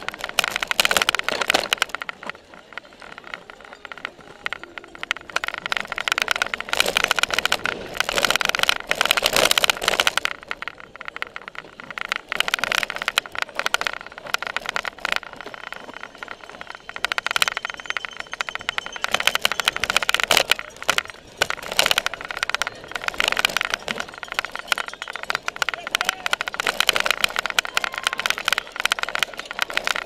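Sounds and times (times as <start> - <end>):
bike rattling and clattering: 0.0 - 30.0
tyre and drivetrain noise: 0.0 - 30.0.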